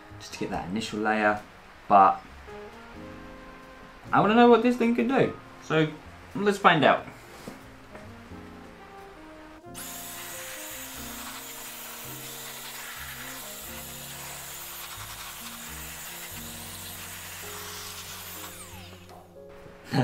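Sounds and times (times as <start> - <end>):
background music: 0.0 - 20.0
electric dust blower blowing air: 9.7 - 19.3.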